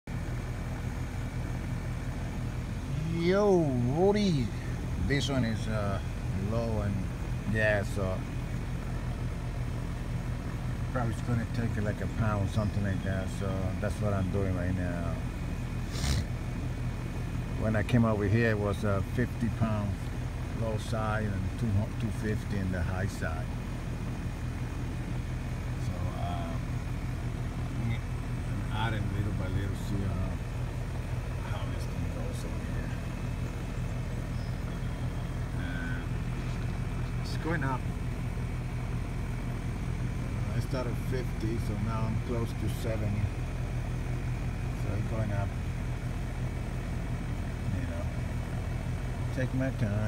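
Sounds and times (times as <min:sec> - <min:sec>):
air conditioning unit humming: 0:00.1 - 0:50.0.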